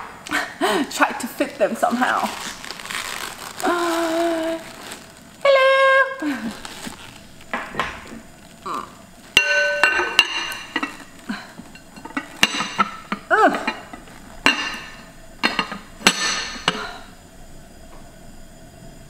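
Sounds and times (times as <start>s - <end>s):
glass lid clinking on pot: 9.4s - 17.0s.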